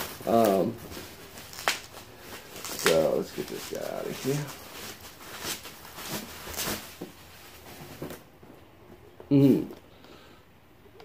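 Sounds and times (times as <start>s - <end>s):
bubble wrap rustling and crinkling: 0.0s - 8.3s.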